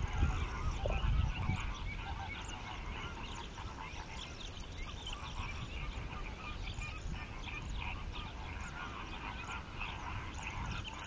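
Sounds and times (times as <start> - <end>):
waterbird calls: 0.0 - 11.0.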